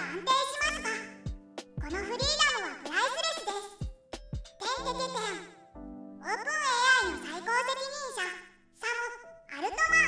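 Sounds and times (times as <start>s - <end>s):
high-pitched voice speaking: 0.0s - 3.9s, 4.6s - 5.6s, 6.2s - 10.0s
background music: 0.0s - 10.0s.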